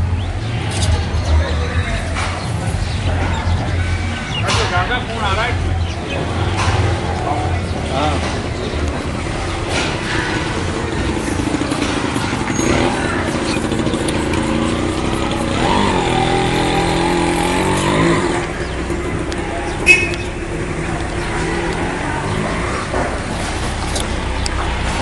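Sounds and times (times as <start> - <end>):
engine-like drone: 0.0 - 25.0
motor vehicles running: 0.0 - 25.0
people's voices: 0.0 - 25.0.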